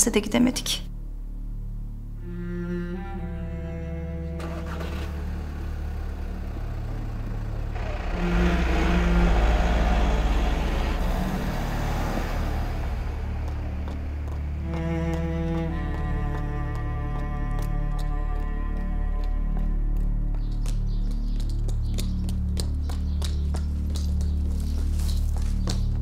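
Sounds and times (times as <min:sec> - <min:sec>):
low bowed strings music: 0:00.0 - 0:26.0
van driving off: 0:02.4 - 0:26.0.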